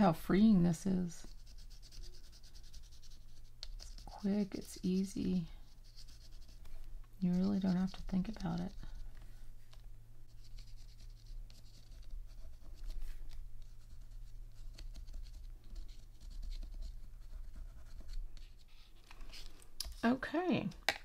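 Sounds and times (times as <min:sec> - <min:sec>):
pencil scratching on paper: 0:01.2 - 0:09.0, 0:10.3 - 0:19.4.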